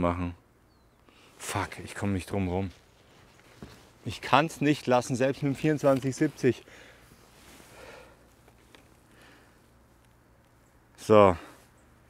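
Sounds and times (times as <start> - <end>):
soft rustles: 1.2 - 10.7.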